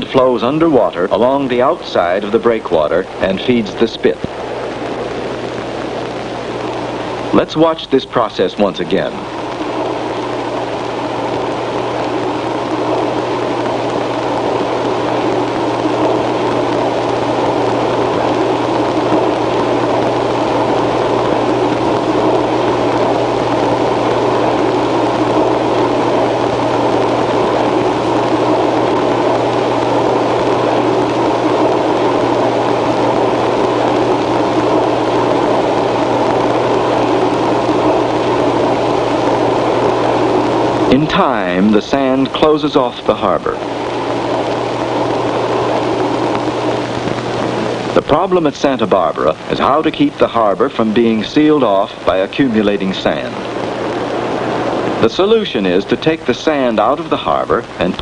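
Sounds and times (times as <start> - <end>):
steady low hum: 0.0 - 58.0
wave machinery running: 0.0 - 58.0.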